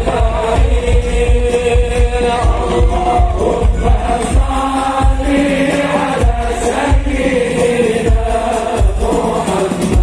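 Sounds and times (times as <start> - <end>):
deep drum beats: 0.0 - 10.0
voices singing devotional song: 0.0 - 10.0.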